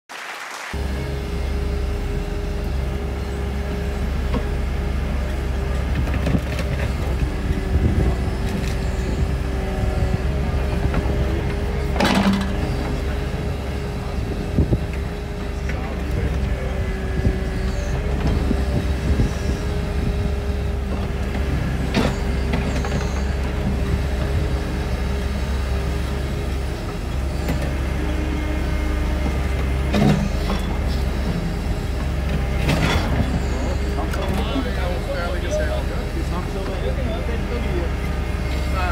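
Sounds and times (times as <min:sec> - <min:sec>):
excavator engine running: 0:00.7 - 0:38.9
hydraulic whine: 0:00.8 - 0:38.9.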